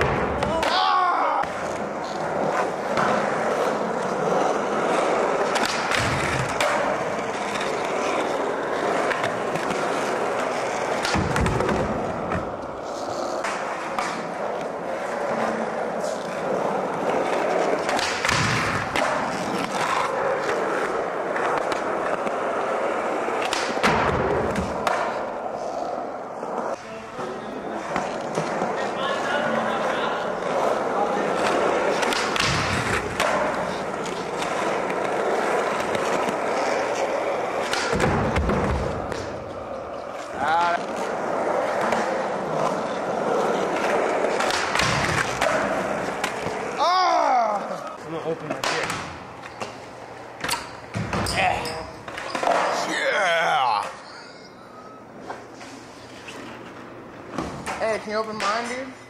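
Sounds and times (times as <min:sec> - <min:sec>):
skateboard wheels rolling on concrete: 0:00.0 - 0:51.2.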